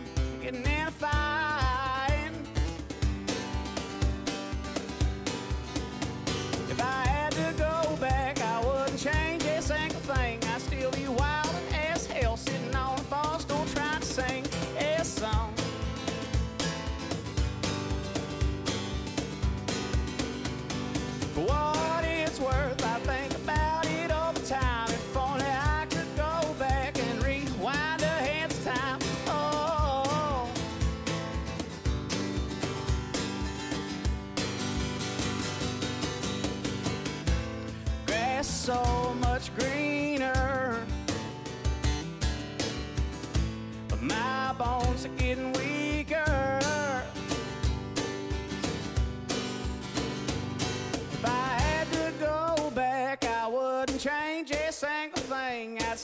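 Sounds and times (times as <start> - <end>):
country song with acoustic guitar: 0.0 - 56.0.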